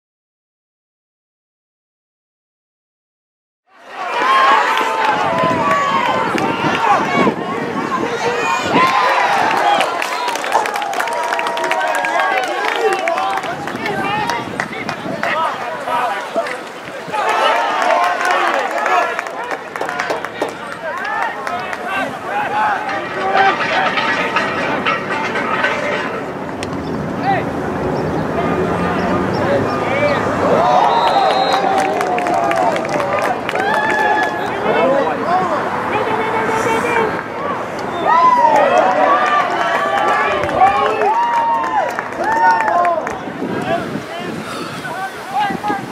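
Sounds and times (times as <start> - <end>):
people shouting: 3.8 - 14.5, 15.2 - 26.2, 28.3 - 45.9
sharp clacks: 19.2 - 27.2.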